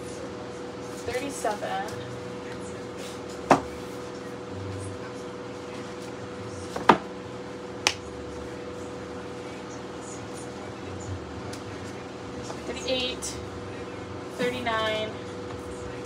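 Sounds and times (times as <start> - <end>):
steady hum: 0.0 - 16.0
books knocking on a shelf: 3.5 - 3.7.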